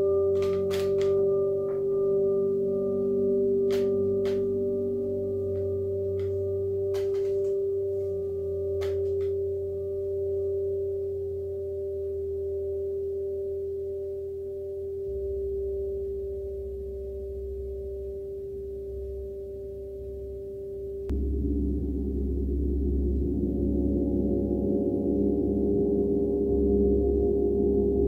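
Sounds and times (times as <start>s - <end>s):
whirling gong ringing: 0.0s - 10.4s, 21.1s - 28.0s.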